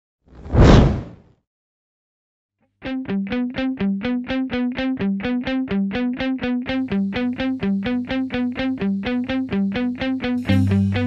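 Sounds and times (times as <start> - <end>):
whoosh sound effect: 0.4 - 1.2.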